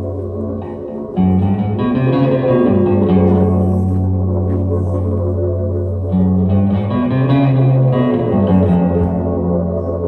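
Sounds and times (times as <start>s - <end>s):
double bass: 0.0s - 10.0s
electric guitar: 0.0s - 10.0s.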